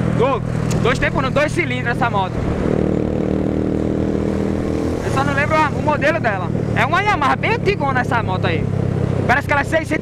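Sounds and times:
motorcycle engine humming: 0:00.0 - 0:10.0
wind and road noise: 0:00.0 - 0:10.0.

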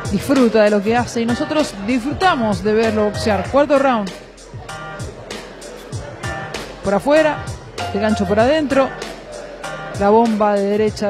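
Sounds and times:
background music with deep drums: 0:00.0 - 0:11.0
man's voice: 0:02.5 - 0:03.8, 0:07.8 - 0:09.0.

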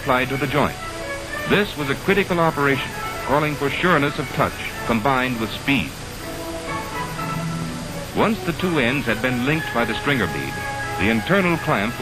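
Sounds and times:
sustained film music chords: 0:00.0 - 0:12.0.

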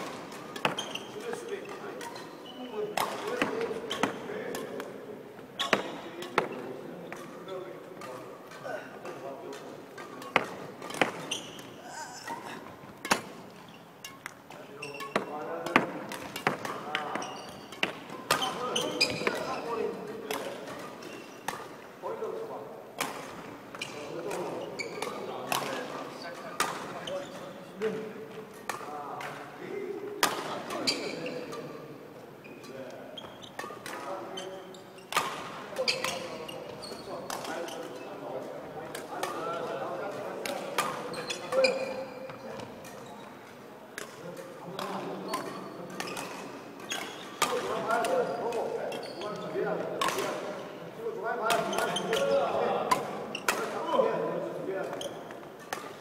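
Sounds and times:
rackets striking shuttlecocks: 0:00.0 - 0:31.7, 0:33.5 - 0:50.6, 0:51.4 - 0:56.0.

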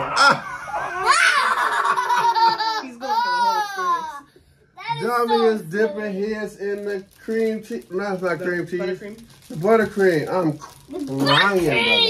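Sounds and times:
man laughing: 0:00.0 - 0:03.6
girl laughing: 0:00.0 - 0:04.2.

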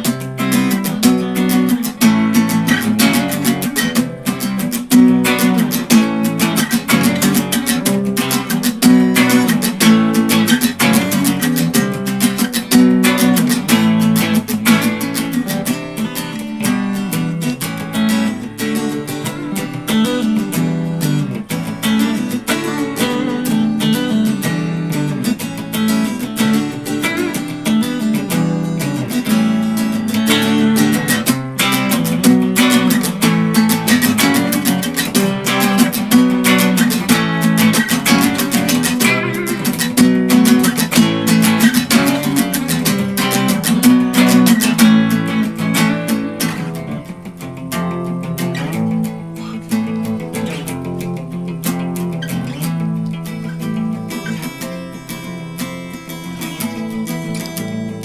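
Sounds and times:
acoustic guitar strumming: 0:00.0 - 0:58.0
electric guitar playing: 0:00.0 - 0:58.0.

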